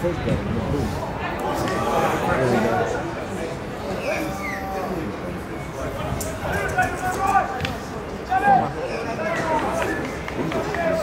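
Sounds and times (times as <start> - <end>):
people calling and shouting: 0.0 - 11.0.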